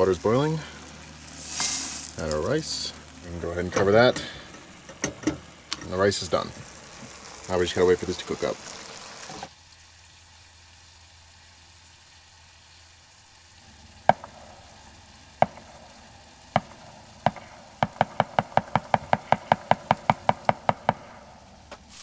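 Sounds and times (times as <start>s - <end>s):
utensil knocking on frying pan: 17.3s - 21.0s.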